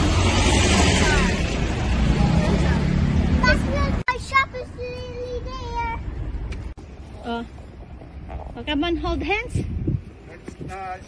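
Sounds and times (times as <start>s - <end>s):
road traffic: 0.0s - 11.0s
quiet outdoor background: 3.0s - 11.0s
wind noise: 7.6s - 11.0s.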